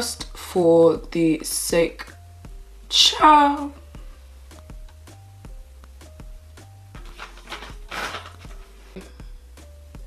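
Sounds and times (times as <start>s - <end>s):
background music with steady beat: 0.0s - 10.0s
baby wipe rustling from packet: 7.0s - 8.9s.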